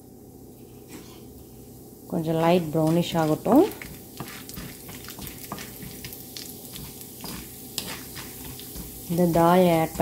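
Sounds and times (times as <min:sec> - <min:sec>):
lentils sizzling in oil: 0:00.5 - 0:10.0.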